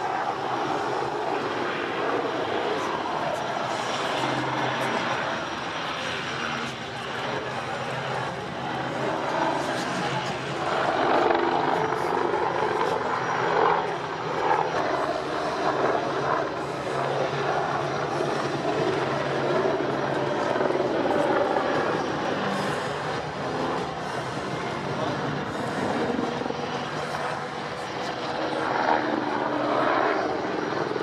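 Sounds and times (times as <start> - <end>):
helicopter rotor drone: 0.0 - 31.0.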